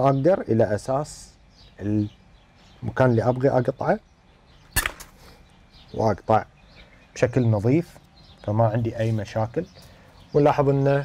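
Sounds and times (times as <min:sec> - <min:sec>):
loppers snapping dry stem: 0:04.8 - 0:05.2.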